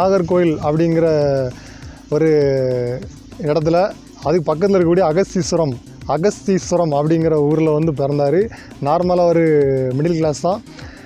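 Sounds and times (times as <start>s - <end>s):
man speaking: 0.0s - 10.7s.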